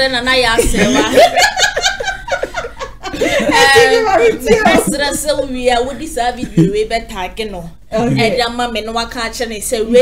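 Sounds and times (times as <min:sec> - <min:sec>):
man and woman laughing: 0:00.7 - 0:05.1.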